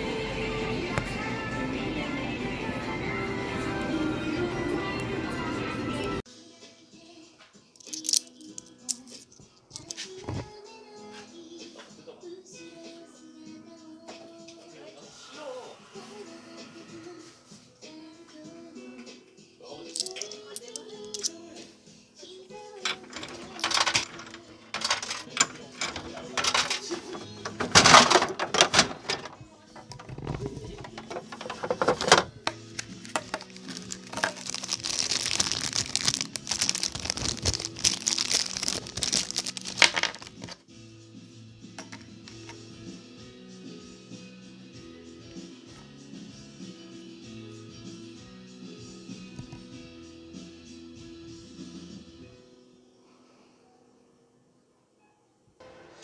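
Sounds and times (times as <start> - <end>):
light background music: 0.0 - 56.0
coins dropping into machine: 7.8 - 10.0, 20.0 - 21.3, 22.9 - 29.4, 33.0 - 40.6.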